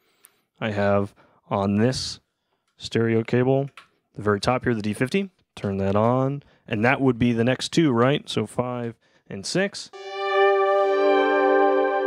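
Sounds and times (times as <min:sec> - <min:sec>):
synthesizer sustained chord: 0:10.0 - 0:12.0.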